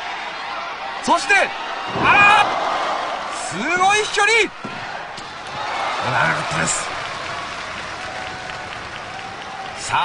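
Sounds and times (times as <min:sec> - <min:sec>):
crowd clapping and cheering: 0:04.8 - 0:10.0.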